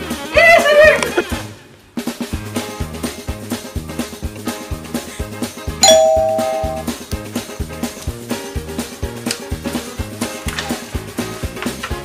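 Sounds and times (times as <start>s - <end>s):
background music with drum beat: 1.9s - 5.8s, 6.7s - 12.0s
two-tone chime: 5.8s - 6.9s.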